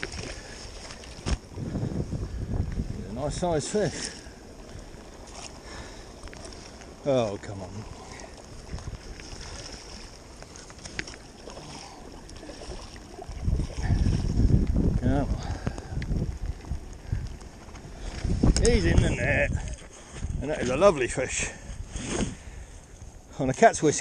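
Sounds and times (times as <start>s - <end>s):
wind on microphone: 0.0s - 7.0s, 7.6s - 23.2s
fish thrashing and splashing: 7.7s - 14.6s.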